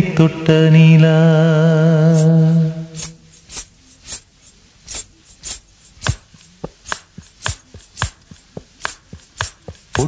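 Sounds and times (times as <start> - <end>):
hand-drum strokes: 4.9 - 10.0.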